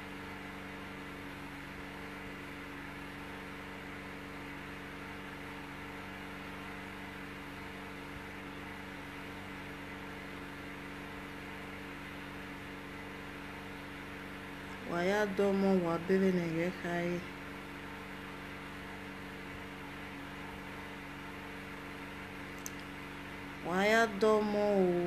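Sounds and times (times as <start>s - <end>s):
low machine hum: 0.0s - 25.0s.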